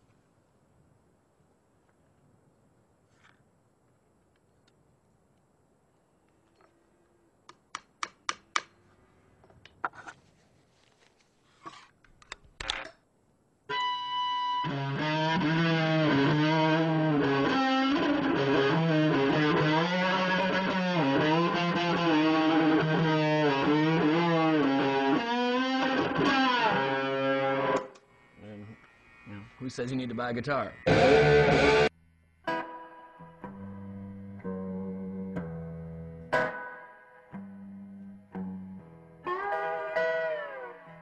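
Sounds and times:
distorted electric guitar sliding: 13.7 - 41.0.

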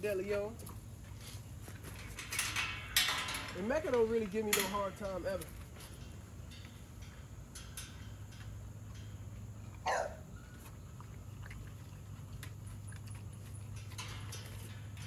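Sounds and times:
steady low hum: 0.0 - 15.0
dog noise: 9.8 - 10.3.

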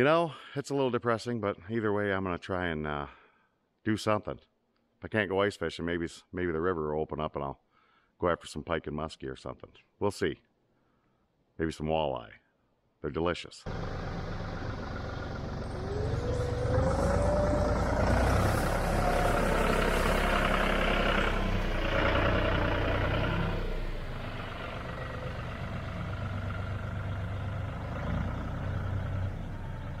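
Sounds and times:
rising whine: 13.7 - 27.4
tractor diesel engine running: 13.7 - 30.0.

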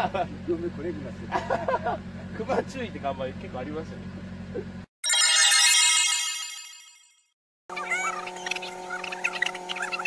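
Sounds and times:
bright high ringing tones: 5.0 - 7.3.

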